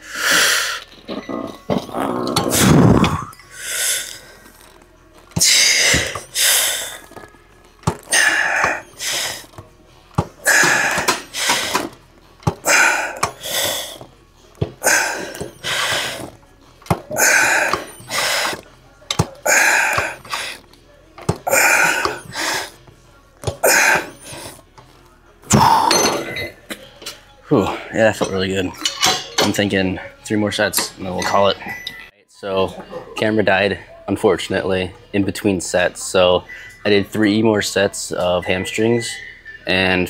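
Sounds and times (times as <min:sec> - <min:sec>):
man breathing hard: 0:08.1 - 0:09.5, 0:10.4 - 0:11.9, 0:12.6 - 0:14.0, 0:14.8 - 0:16.3, 0:17.1 - 0:18.6, 0:21.5 - 0:22.8.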